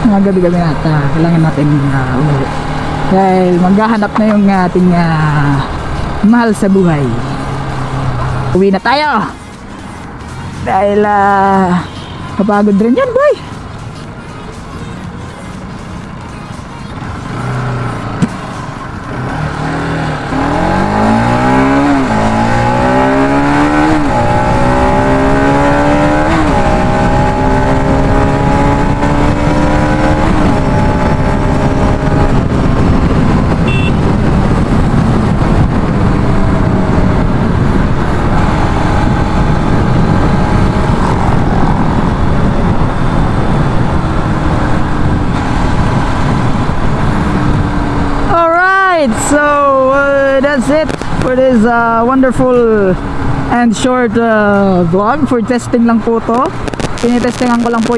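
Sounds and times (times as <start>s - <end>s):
motorcycle engine accelerating: 17.2s - 57.9s
wind rush on microphone: 19.1s - 57.9s.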